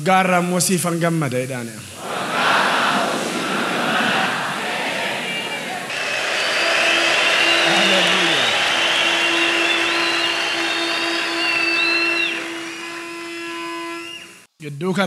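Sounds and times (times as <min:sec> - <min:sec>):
crowd cheering and shouting: 0:02.0 - 0:13.4
high-pitched held cries: 0:04.4 - 0:14.4
low sustained note: 0:05.9 - 0:14.4.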